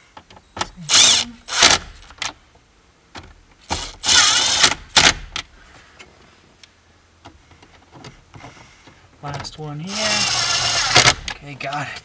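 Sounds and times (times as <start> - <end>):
impact driver whirring: 0.9 - 2.0, 3.7 - 5.2, 9.9 - 11.3.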